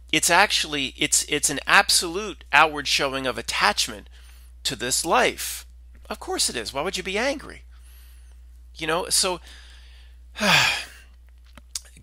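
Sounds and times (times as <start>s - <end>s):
man sighing: 10.4s - 11.1s.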